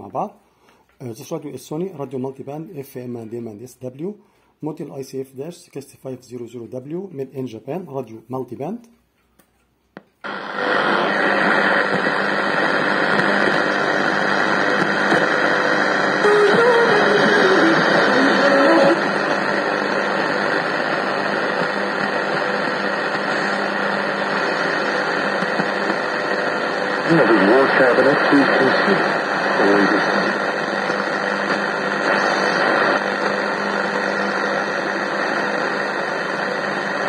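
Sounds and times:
radio static: 10.2s - 37.0s.

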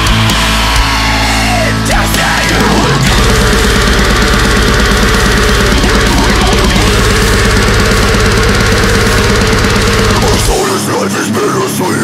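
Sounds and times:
deathcore band playing: 0.0s - 12.0s
distorted electric guitars: 0.0s - 12.0s
fast kick drum: 3.0s - 10.5s.

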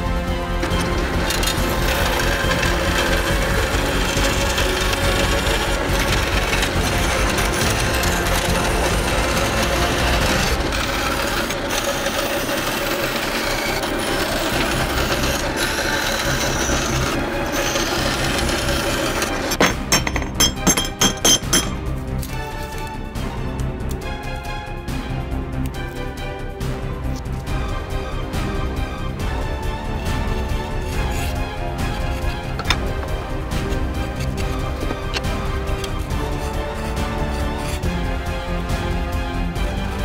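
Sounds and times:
band saw cutting steel: 0.0s - 23.0s, 26.8s - 40.0s
background music: 0.0s - 40.0s.

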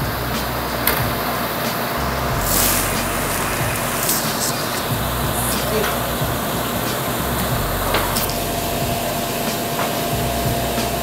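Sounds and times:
burst of hiss: 0.2s - 11.0s
general store din: 2.2s - 8.6s.

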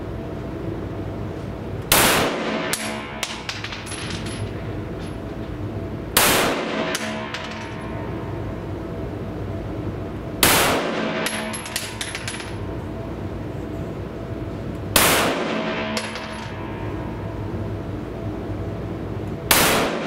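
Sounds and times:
steady background hum: 0.0s - 20.0s
pistol shots echoing: 1.9s - 3.6s, 6.2s - 7.5s, 10.4s - 12.0s, 15.0s - 16.7s, 19.5s - 20.0s.

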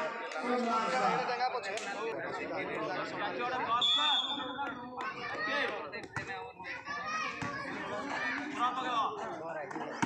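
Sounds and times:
people calling and shouting: 0.0s - 10.0s.

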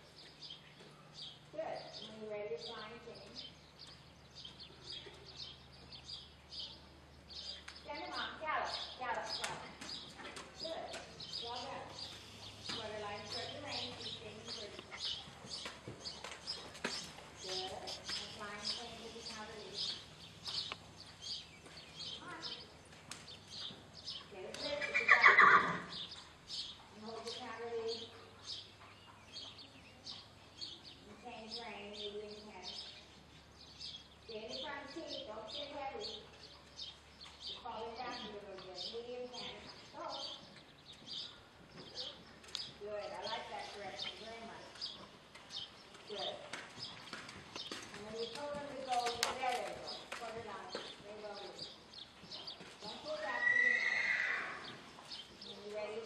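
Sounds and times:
hoofbeats of horse trotting: 7.3s - 30.7s, 34.7s - 56.0s
horse whinnying: 24.8s - 25.9s, 53.3s - 54.6s.

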